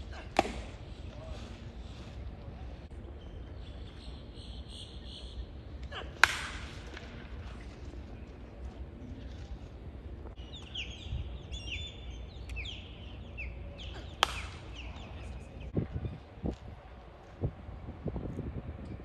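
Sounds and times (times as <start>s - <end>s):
baseball smacking into mitt: 0.2s - 0.8s, 6.2s - 7.2s, 14.1s - 14.8s
bird chirping: 3.0s - 5.5s, 10.4s - 16.2s.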